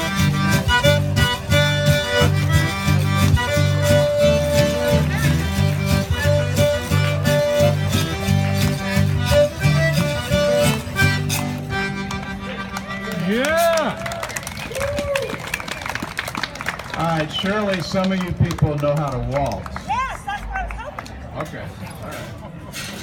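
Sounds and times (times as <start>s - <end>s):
zydeco band playing: 0.0s - 15.1s.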